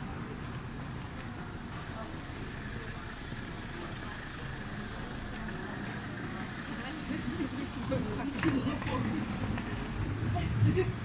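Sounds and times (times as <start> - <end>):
low rumble of traffic: 0.0 - 11.0
people talking: 0.0 - 11.0.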